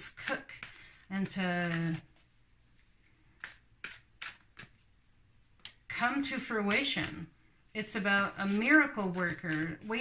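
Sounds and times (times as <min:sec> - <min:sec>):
cards shuffled by hand: 0:00.0 - 0:07.3.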